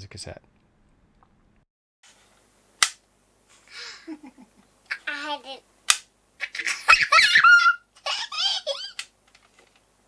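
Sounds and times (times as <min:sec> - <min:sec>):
child giggling: 0:03.8 - 0:05.5, 0:06.4 - 0:09.0.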